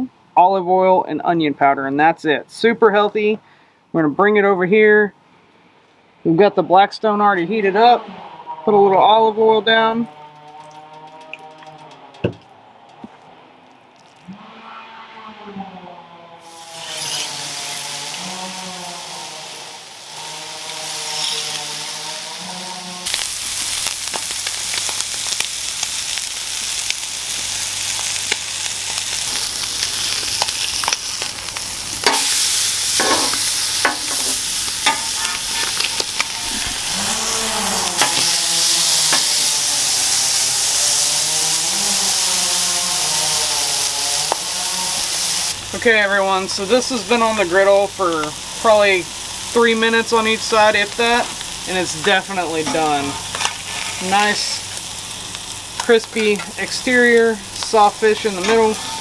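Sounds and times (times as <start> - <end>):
fish sizzling in oil: 16.4 - 59.0
metal spatula tapping and scraping: 33.0 - 36.4.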